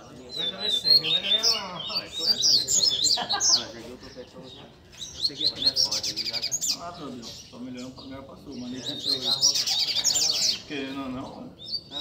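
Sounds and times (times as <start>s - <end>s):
birds chirping and trilling: 0.0s - 12.0s.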